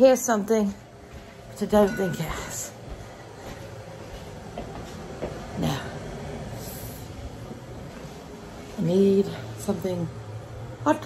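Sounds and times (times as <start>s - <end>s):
kettle heating rushing rumble: 0.0s - 11.0s.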